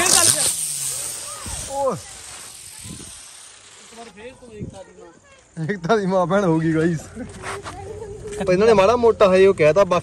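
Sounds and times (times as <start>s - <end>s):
firecracker fizzing: 0.0s - 5.6s.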